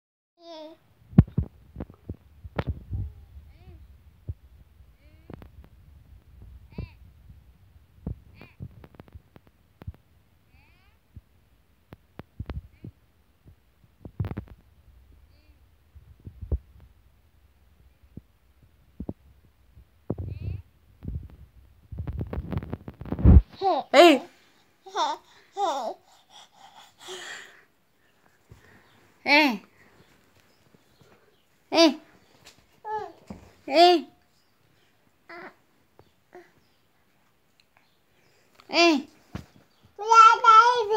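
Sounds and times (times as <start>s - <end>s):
faint rustles: 0.6s - 27.1s, 28.0s - 40.0s
soft low thumps: 1.1s - 10.1s
baby shouting: 40.0s - 40.9s.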